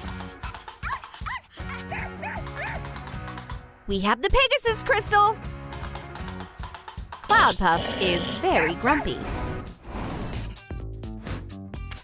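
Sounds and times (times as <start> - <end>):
background music: 0.0 - 12.0
small dog yapping: 0.8 - 2.8.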